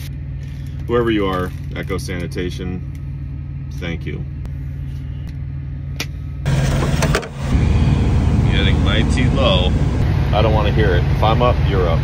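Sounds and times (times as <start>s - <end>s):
diesel truck engine idling: 6.4s - 12.0s.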